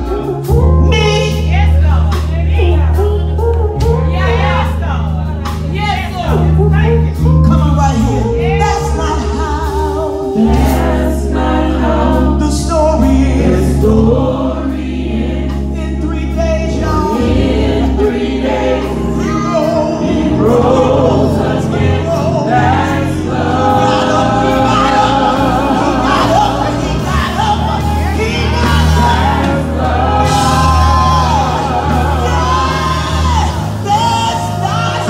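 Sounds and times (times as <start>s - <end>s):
instrumental accompaniment: 0.0s - 35.0s
steady bass line: 0.0s - 35.0s
backing singers: 8.3s - 16.0s, 17.0s - 35.0s.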